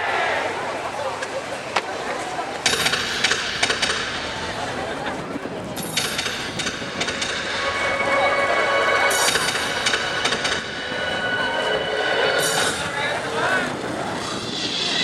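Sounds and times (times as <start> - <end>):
crowd noise: 0.0 - 15.0.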